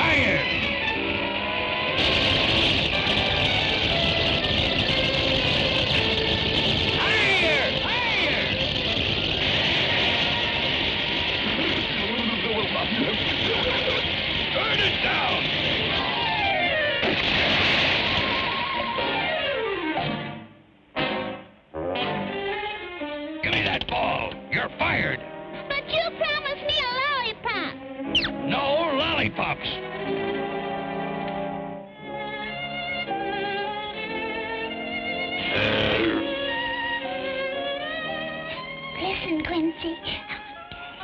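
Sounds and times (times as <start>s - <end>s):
orchestral cartoon music: 0.0s - 10.8s, 18.0s - 41.0s.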